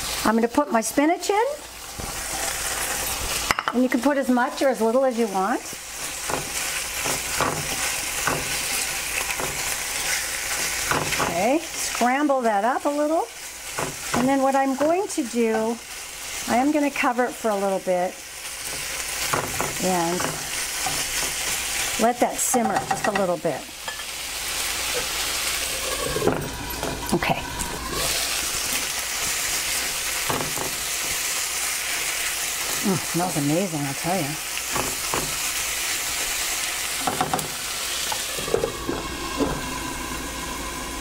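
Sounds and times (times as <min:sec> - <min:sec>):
food sizzling in hot oil: 0:00.0 - 0:41.0
spatula scraping a pan: 0:02.0 - 0:03.6, 0:18.6 - 0:21.9.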